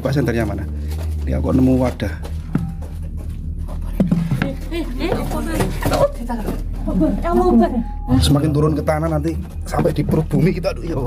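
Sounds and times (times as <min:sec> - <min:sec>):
indistinct voices talking: 0:00.0 - 0:11.0
steady low hum: 0:00.0 - 0:11.0.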